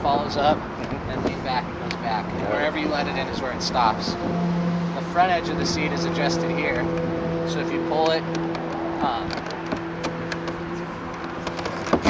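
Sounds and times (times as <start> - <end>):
plastic clicks and knocks: 8.0 - 12.0.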